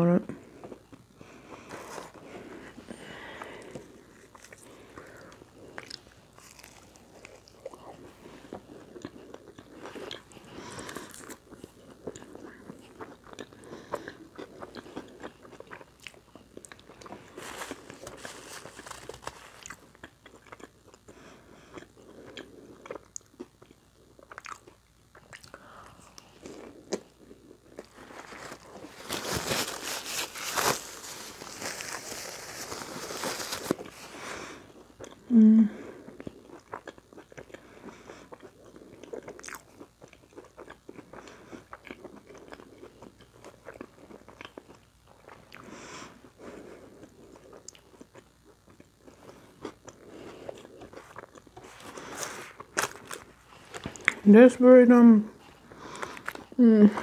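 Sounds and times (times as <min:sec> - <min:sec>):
person chewing crunchy food: 0:00.4 - 0:54.3, 0:55.4 - 0:57.0
paper rustling: 0:17.4 - 0:19.6, 0:28.0 - 0:34.1.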